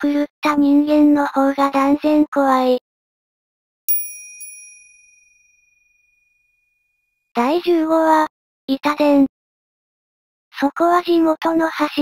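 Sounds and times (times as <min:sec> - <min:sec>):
small bell chime: 0:03.9 - 0:07.1.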